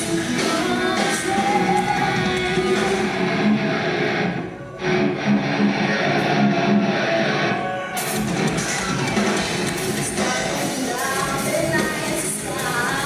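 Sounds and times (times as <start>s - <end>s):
distorted electric guitar riff: 0.0s - 13.0s
metal band playing live: 0.0s - 13.0s.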